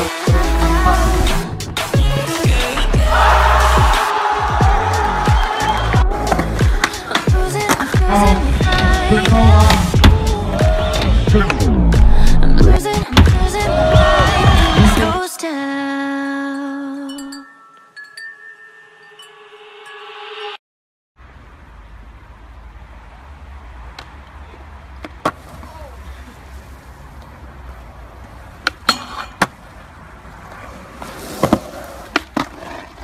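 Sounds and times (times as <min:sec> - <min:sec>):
skateboard wheels rolling on concrete: 0:00.0 - 0:12.1, 0:21.6 - 0:33.0
bell-like ringing tones: 0:16.6 - 0:20.6
skateboard clacks: 0:30.6 - 0:33.0.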